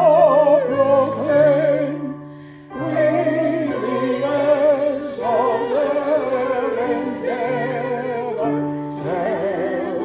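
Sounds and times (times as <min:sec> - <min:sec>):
instrumental accompaniment: 0:00.0 - 0:10.0
voices singing a hymn: 0:00.0 - 0:10.0.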